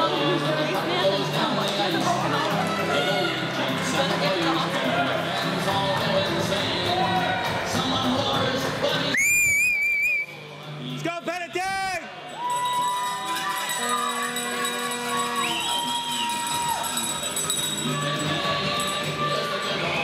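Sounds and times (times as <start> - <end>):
arena crowd noise: 0.0 - 20.0
referee whistle trill: 9.1 - 10.4, 15.1 - 16.8.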